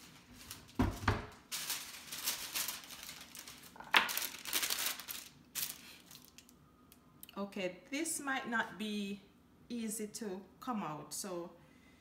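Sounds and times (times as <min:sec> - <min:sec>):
paper rustling and crinkling: 0:00.0 - 0:06.4.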